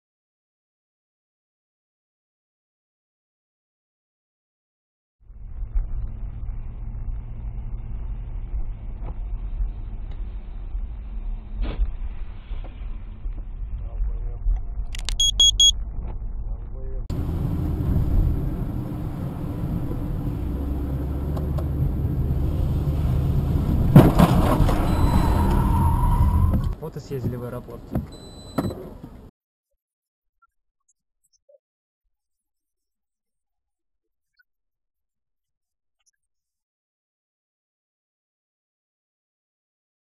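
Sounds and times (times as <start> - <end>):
car engine and road rumble: 5.3 - 29.3
high beeps: 15.0 - 15.7, 24.9 - 25.5.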